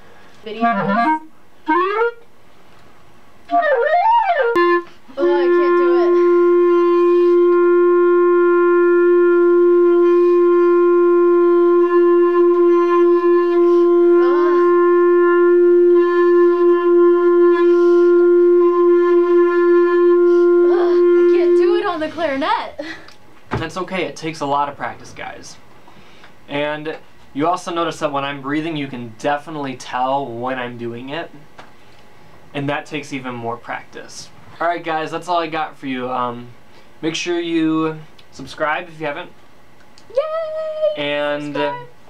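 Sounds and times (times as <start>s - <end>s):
clarinet long steady note: 0.5s - 2.2s, 3.5s - 22.6s, 40.5s - 42.0s.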